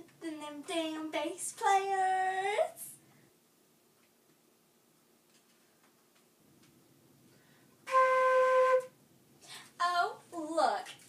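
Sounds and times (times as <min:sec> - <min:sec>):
flute held note: 0:07.8 - 0:08.9.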